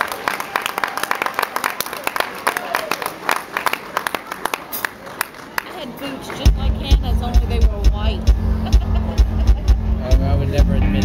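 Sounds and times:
upbeat pop music over loudspeakers: 6.4s - 8.5s, 9.2s - 11.0s.

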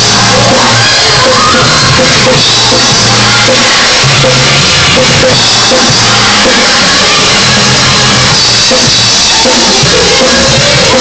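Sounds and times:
drums: 0.0s - 11.0s
keyboard: 0.0s - 11.0s.

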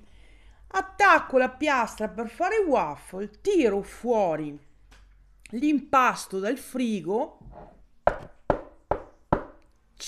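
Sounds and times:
sharp knocks on hard surface: 8.1s - 9.6s.

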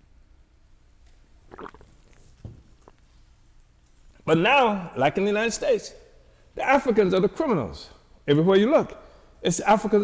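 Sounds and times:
man swallowing: 1.4s - 3.0s.

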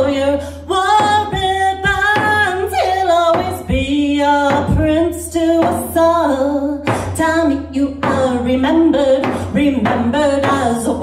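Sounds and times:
woman singing sliding notes: 0.0s - 11.0s
frame drum beats: 1.0s - 2.7s, 3.3s - 5.0s, 6.9s - 7.3s, 8.0s - 11.0s.

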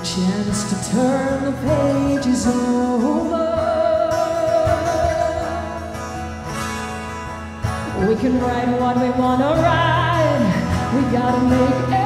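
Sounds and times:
acoustic guitar: 0.0s - 12.0s
woman singing with vibrato: 0.1s - 6.1s, 7.9s - 12.0s.

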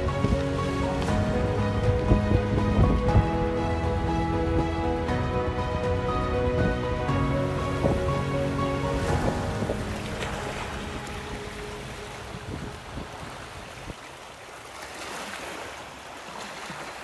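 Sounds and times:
background music: 0.0s - 13.6s
sea waves: 0.0s - 17.0s
wind: 0.0s - 17.0s.

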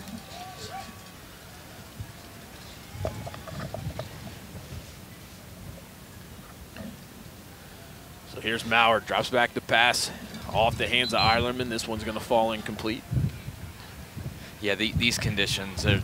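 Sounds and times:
steady low hiss: 0.0s - 16.0s
distant indistinct voices: 5.9s - 14.0s.

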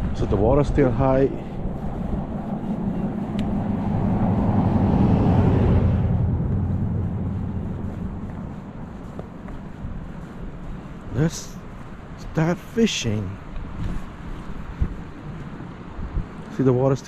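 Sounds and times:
car passing: 0.0s - 17.0s.

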